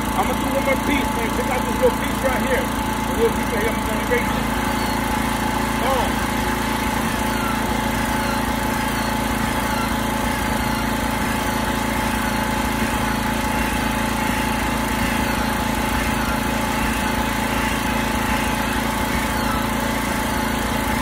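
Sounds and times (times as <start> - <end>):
drill whining: 0.0 - 21.0.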